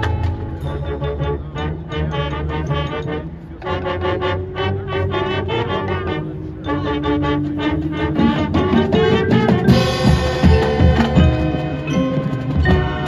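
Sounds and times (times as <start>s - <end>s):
drums: 0.0s - 1.9s, 7.3s - 13.0s
marching band brass: 0.0s - 13.0s.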